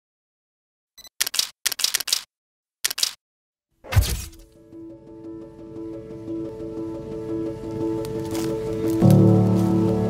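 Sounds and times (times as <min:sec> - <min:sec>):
camera shutter rapid clicks: 0:01.2 - 0:03.2.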